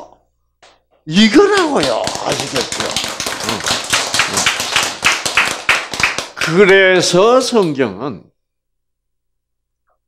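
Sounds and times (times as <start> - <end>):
audience clapping: 1.2 - 7.8.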